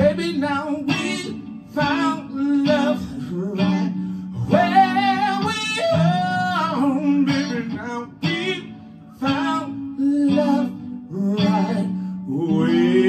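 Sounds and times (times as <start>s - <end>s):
electric guitar chord strums: 0.0s - 13.0s.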